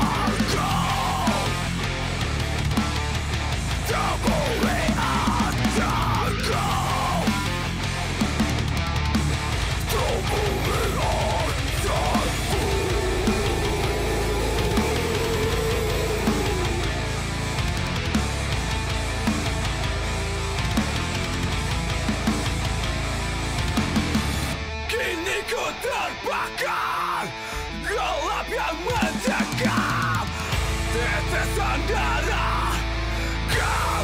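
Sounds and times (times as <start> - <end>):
heavy metal band playing: 0.0 - 34.0.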